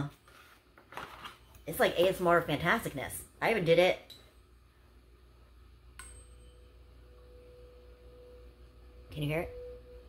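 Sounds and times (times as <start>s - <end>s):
tuning fork struck and ringing: 5.9s - 10.0s.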